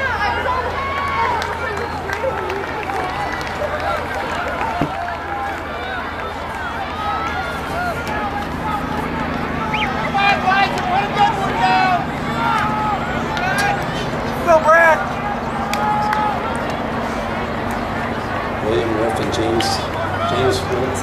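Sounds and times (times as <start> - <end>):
chatter of many voices: 0.0 - 21.0
people calling out: 0.0 - 21.0.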